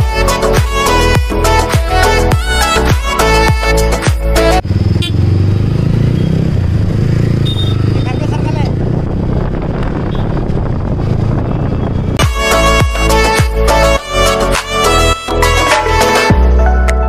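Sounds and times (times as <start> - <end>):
music: 0.0 - 4.6, 12.2 - 17.0
road and wind noise: 0.0 - 17.0
motorcycle engine running: 3.4 - 13.7.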